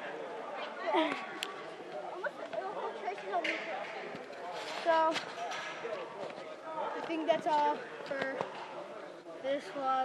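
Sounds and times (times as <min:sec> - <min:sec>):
people talking: 0:06.2 - 0:08.6.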